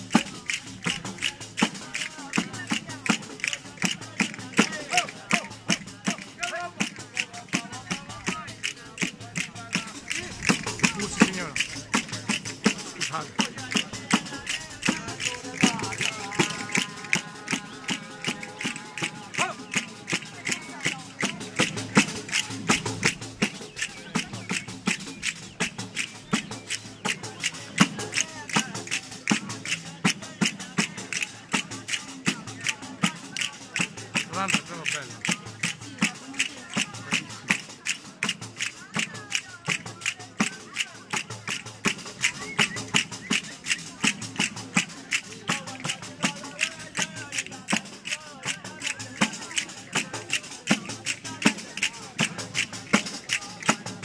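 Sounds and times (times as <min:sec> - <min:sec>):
crowd chatter: 0:00.0 - 0:54.0
frame drum with jingles: 0:00.0 - 0:54.0
person singing: 0:00.1 - 0:24.3, 0:27.3 - 0:34.2, 0:43.6 - 0:54.0.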